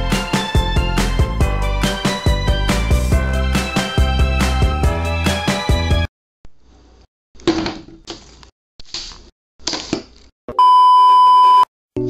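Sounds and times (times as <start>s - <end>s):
loud steady high beep: 10.6s - 11.7s.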